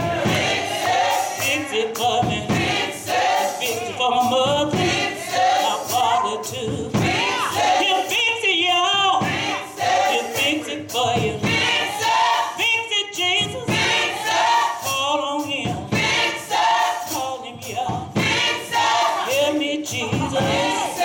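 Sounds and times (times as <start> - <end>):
gospel choir singing: 0.0 - 21.0.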